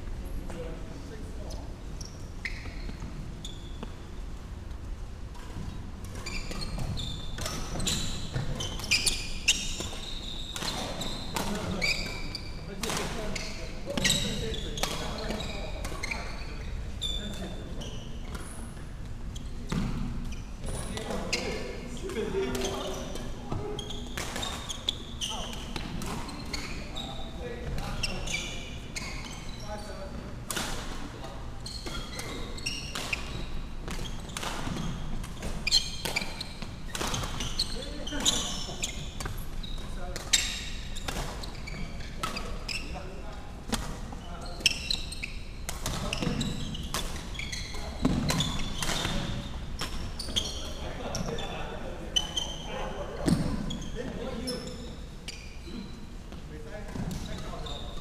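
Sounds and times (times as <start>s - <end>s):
sneaker squeaks on wooden floor: 1.4s - 4.2s, 5.6s - 58.0s.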